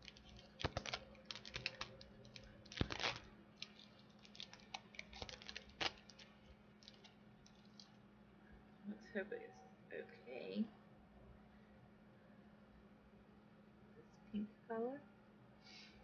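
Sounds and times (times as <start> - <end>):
packaging clicks and crackles: 0.0 - 7.9.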